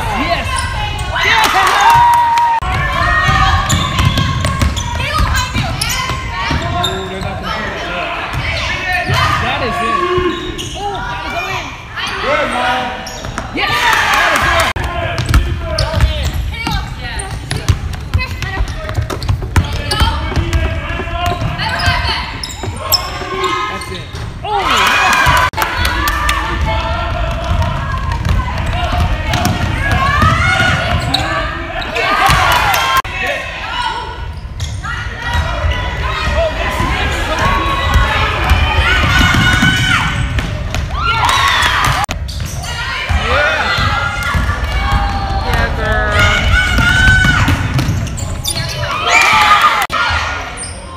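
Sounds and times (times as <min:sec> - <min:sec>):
people shouting: 0:00.0 - 0:06.6, 0:24.4 - 0:34.2, 0:34.8 - 0:40.3, 0:40.9 - 0:47.9.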